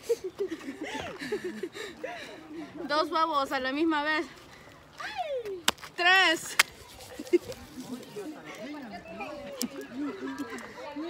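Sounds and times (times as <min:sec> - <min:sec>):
people laughing: 0:00.0 - 0:02.8, 0:07.0 - 0:11.0.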